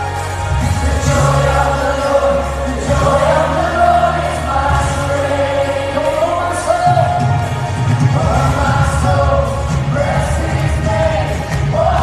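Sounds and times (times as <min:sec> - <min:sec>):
live worship band music: 0:00.0 - 0:12.0
man singing: 0:00.0 - 0:12.0.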